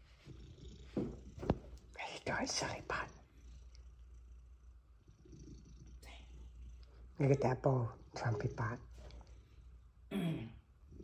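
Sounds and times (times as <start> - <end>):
cat purring: 0.0 - 10.1.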